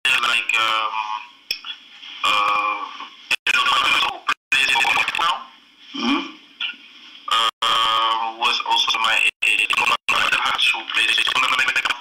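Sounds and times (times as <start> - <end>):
person speaking over online call: 0.0 - 1.4, 2.2 - 5.6, 7.3 - 12.0.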